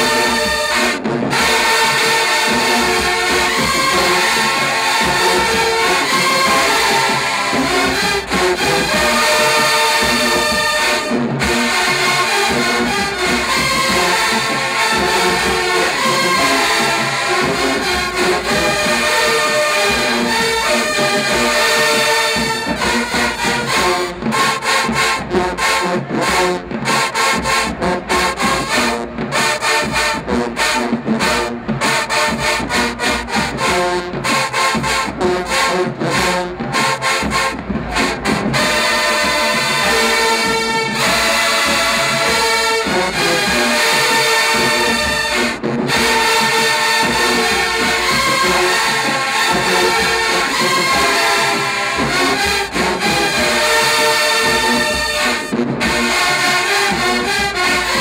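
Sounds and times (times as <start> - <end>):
marching band playing brass: 0.0 - 58.0.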